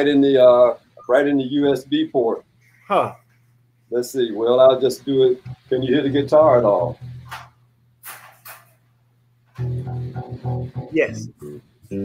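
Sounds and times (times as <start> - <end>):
electric guitar low plucked notes: 5.0 - 7.5, 9.6 - 12.0.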